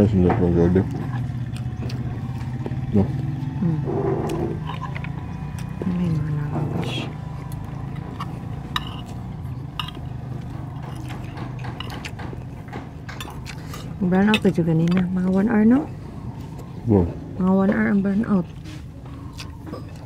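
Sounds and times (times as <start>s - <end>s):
steady low hum: 0.0s - 20.0s
low vocal sounds: 2.9s - 4.7s
cutlery clinking on ceramic plates: 8.7s - 9.1s, 9.7s - 10.1s, 13.0s - 13.5s.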